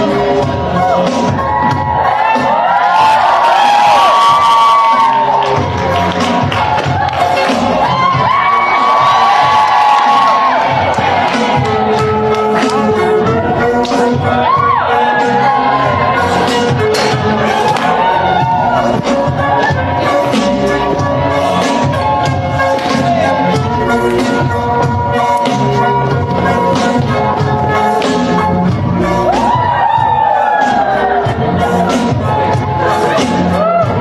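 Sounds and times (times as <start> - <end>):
dance music: 0.0 - 34.0
guests cheering: 0.7 - 26.8, 29.1 - 34.0.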